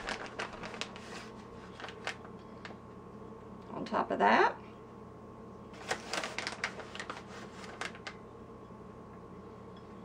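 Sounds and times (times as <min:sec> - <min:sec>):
plastic bag crinkling: 0:00.0 - 0:02.8, 0:05.8 - 0:08.2.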